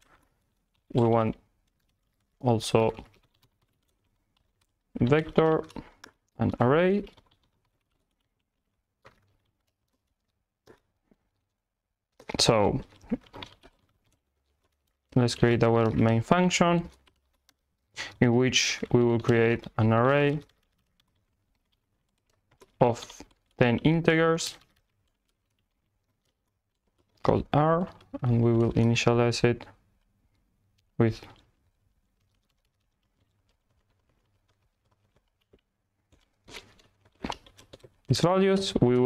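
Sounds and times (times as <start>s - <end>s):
faint keyboard typing: 0.0s - 39.0s.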